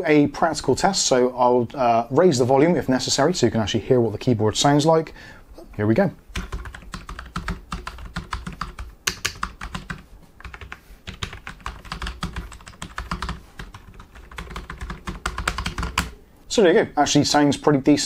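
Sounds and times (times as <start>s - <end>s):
muted keyboard typing: 6.3s - 16.2s.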